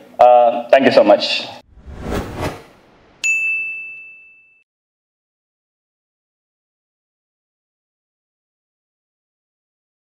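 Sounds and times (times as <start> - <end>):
high bell-like ding: 3.2 - 4.6.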